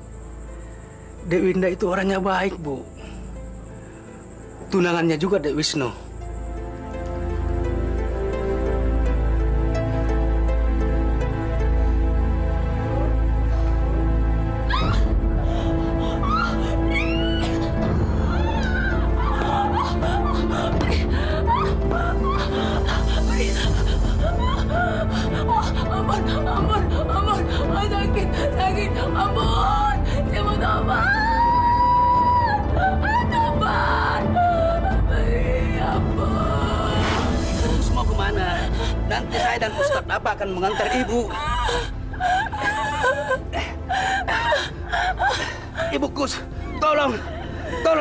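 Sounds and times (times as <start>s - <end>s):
dramatic background music: 0.0s - 48.0s
woman sobbing with gasps: 14.6s - 48.0s
woman wailing and crying: 14.6s - 48.0s.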